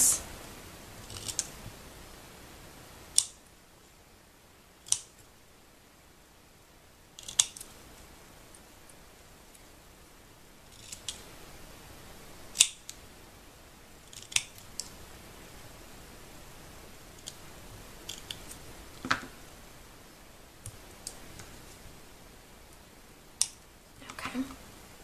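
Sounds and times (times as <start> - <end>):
scissors snipping paper: 1.0 - 1.5.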